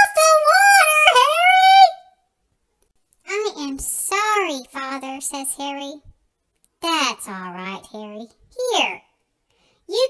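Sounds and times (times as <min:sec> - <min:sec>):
high-pitched sing-song character voice: 0:00.0 - 0:02.1.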